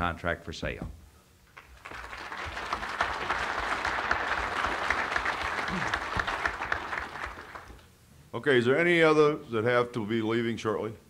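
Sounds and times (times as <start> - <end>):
audience applauding: 1.6 - 7.8.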